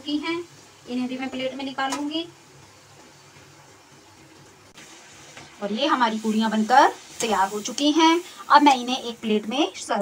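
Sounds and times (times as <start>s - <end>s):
food sizzling in hot oil: 0.0s - 10.0s.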